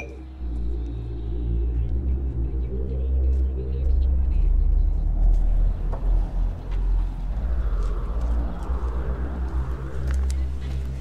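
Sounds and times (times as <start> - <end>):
deep low rumble: 0.0 - 11.0
steady music tones: 0.0 - 11.0.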